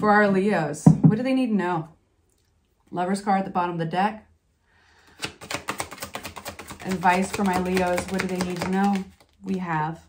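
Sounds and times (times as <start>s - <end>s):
cards being shuffled: 5.1s - 9.8s.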